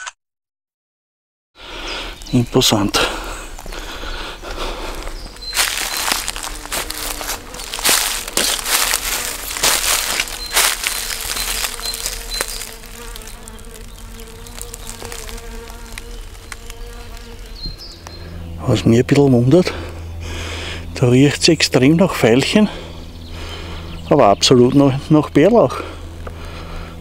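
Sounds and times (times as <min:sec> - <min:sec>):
flying insect buzzing: 0:01.6 - 0:19.0
footsteps crunching dry leaves: 0:02.0 - 0:18.1.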